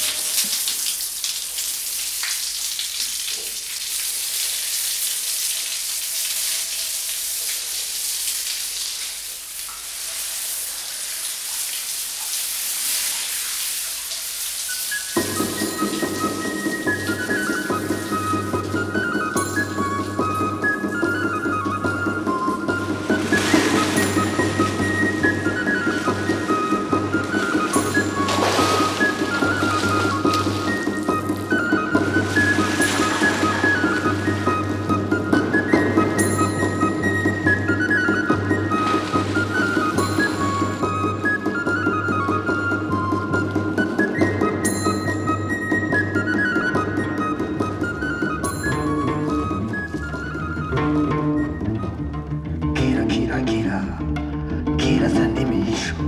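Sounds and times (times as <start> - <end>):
shower spray hissing: 0.0 - 20.1, 22.3 - 36.8, 37.8 - 41.4.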